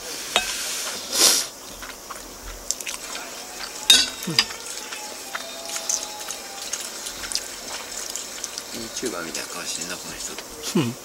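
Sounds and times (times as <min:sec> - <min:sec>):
person chewing with wet clicks: 0:00.4 - 0:10.7.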